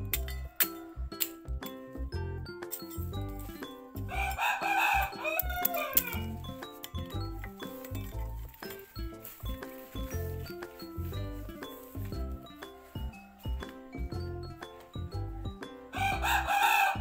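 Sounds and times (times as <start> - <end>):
music with steady beat: 0.0 - 17.0
rooster crowing: 4.1 - 6.3, 15.9 - 17.0.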